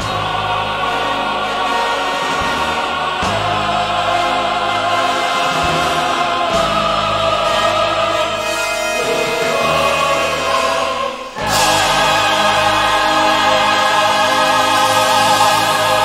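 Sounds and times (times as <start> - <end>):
choir and orchestra singing chords: 0.0 - 16.0.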